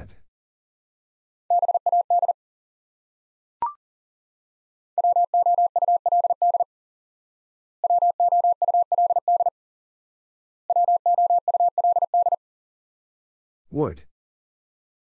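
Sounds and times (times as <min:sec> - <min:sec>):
morse code tone: 0:07.8 - 0:09.5, 0:10.7 - 0:12.4.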